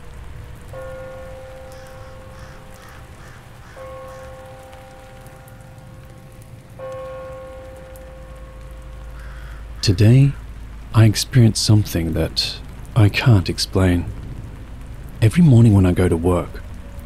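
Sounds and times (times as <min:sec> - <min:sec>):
long held music notes: 0:00.0 - 0:17.0
soft steady hiss: 0:00.0 - 0:17.0.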